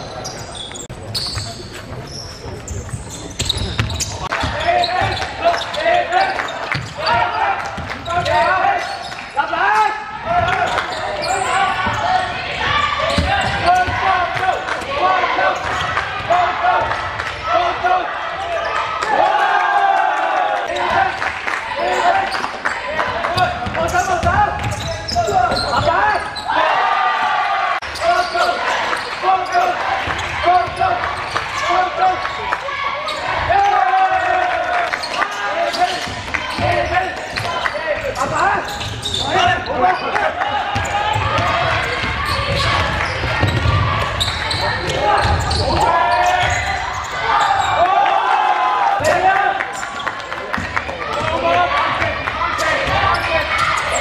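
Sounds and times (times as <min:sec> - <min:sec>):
basketball bouncing on court: 0:02.8 - 0:05.7, 0:06.7 - 0:08.4, 0:10.2 - 0:14.6, 0:23.4 - 0:26.0, 0:35.9 - 0:39.2, 0:40.7 - 0:46.8, 0:50.5 - 0:54.0
voices and shouts: 0:03.8 - 0:54.0.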